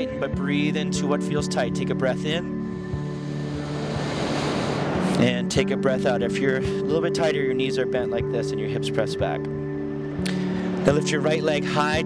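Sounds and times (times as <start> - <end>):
soft guitar music: 0.0 - 12.0
breath in close to microphone: 10.3 - 10.8.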